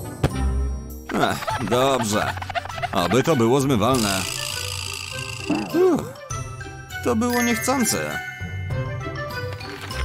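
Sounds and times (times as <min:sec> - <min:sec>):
light background music: 0:00.0 - 0:10.0
tinkling chime-like jingle: 0:07.3 - 0:08.9.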